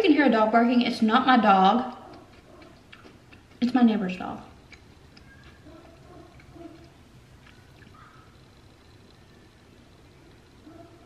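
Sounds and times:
dog barking faintly: 0:05.3 - 0:07.0, 0:10.2 - 0:11.0.

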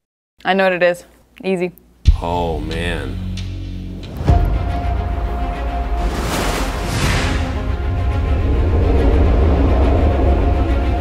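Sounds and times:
low rumbling drone: 0:04.3 - 0:11.0.

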